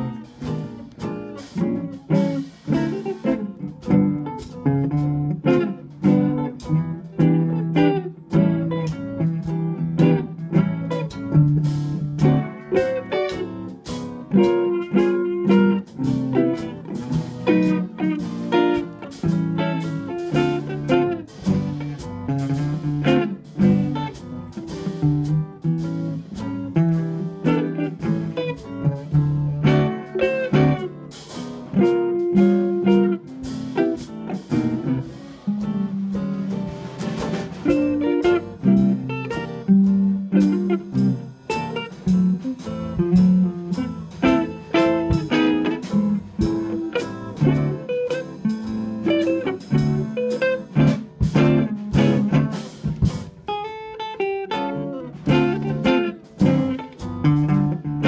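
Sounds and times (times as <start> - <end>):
drum kit: 0.0 - 58.0
electric guitars playing jazz: 0.0 - 58.0.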